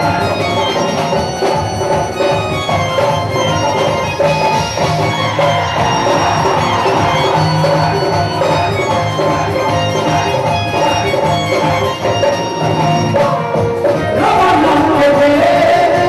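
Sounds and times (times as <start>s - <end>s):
band playing stage music: 0.0s - 16.0s
steady drum beat: 0.0s - 16.0s.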